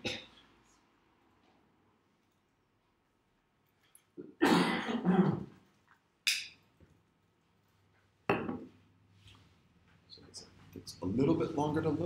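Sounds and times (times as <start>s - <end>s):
man coughing harshly: 4.4s - 5.5s.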